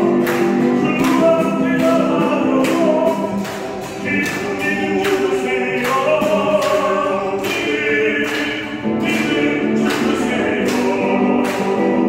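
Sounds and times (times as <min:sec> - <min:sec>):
acoustic guitar: 0:00.0 - 0:12.0
voices singing a hymn: 0:00.0 - 0:12.0.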